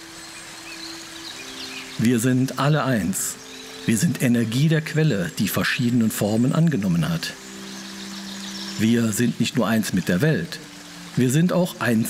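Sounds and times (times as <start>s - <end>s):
faint hiss: 0.0s - 12.0s
person speaking: 2.0s - 7.4s, 8.8s - 10.6s.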